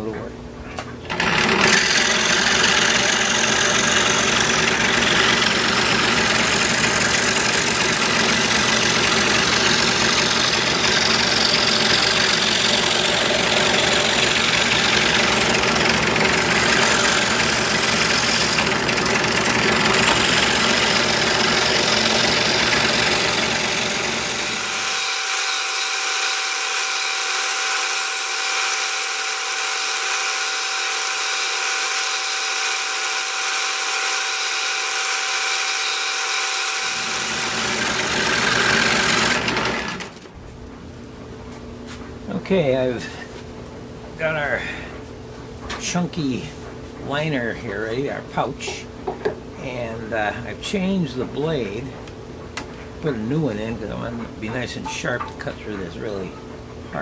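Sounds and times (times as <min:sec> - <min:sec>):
scroll saw cutting wood: 0:01.1 - 0:40.3.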